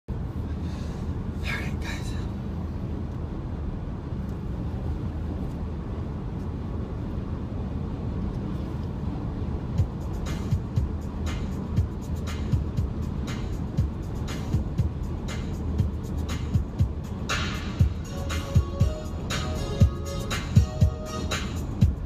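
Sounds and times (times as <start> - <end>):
car cabin road noise: 0.1 - 22.0
music playing: 9.8 - 22.0
regular beat: 9.8 - 22.0.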